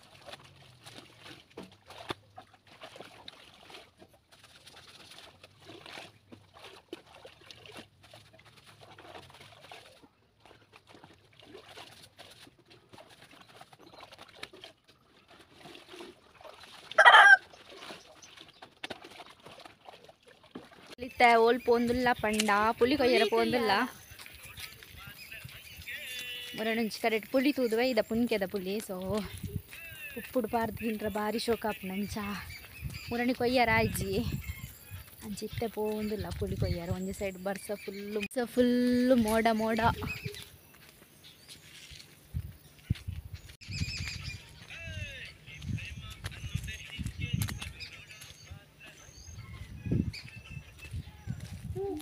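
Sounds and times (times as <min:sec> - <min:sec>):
footsteps on dirt path: 0:21.2 - 0:52.0.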